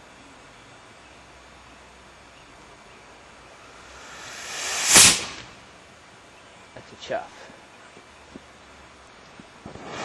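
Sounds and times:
rocket motor rushing hiss: 0:03.6 - 0:05.7, 0:09.6 - 0:10.0.

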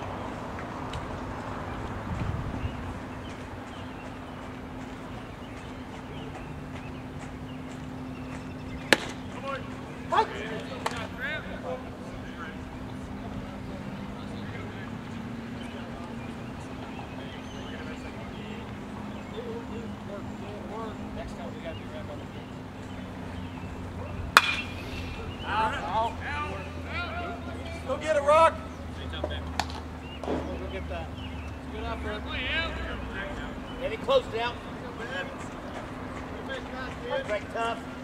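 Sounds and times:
steady low hum: 0:00.0 - 0:29.2
voices calling out: 0:00.0 - 0:38.0
baseball smacking into mitt: 0:08.8 - 0:09.3, 0:24.4 - 0:24.8
bat cracking a ball: 0:08.8 - 0:09.4, 0:24.3 - 0:25.0, 0:29.6 - 0:30.5.

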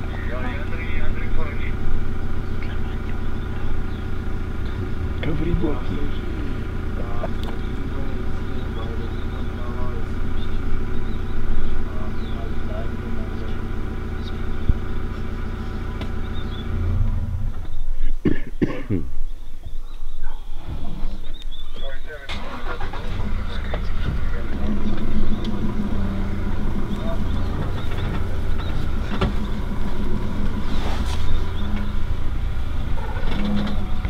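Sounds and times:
vehicle engine idling: 0:00.0 - 0:34.0
rustles: 0:22.3 - 0:34.0.

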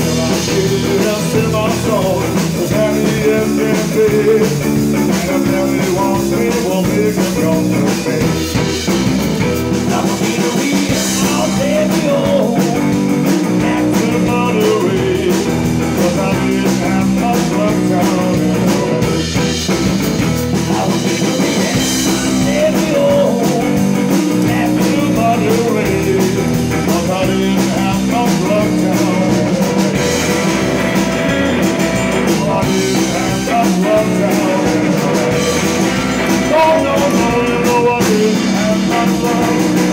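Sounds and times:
drum kit: 0:00.0 - 0:39.9
electric guitar: 0:00.0 - 0:39.9
upright double bass: 0:00.0 - 0:39.9.

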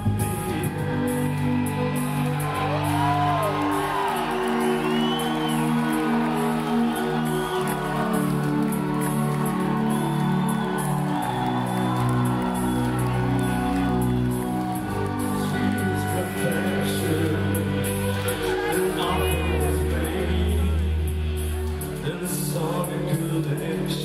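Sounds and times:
live concert music: 0:00.0 - 0:24.0
audience whooping: 0:00.8 - 0:20.8.

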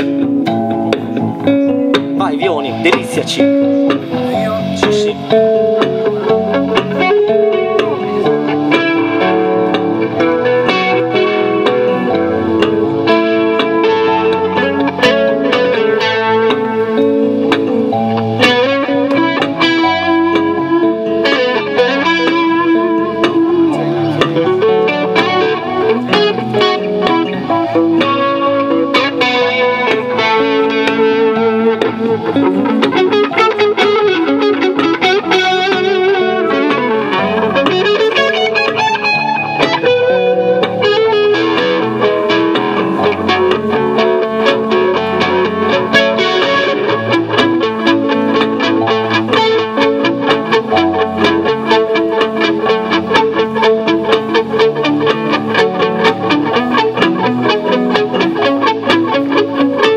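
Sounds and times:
bass guitar: 0:00.0 - 0:59.9
distorted electric guitar: 0:00.0 - 0:59.9.

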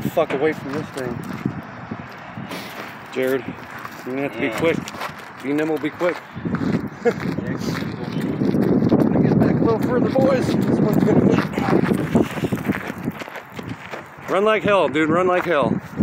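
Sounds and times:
wind noise on microphone: 0:00.0 - 0:16.0
footsteps on gravel: 0:00.4 - 0:15.6.

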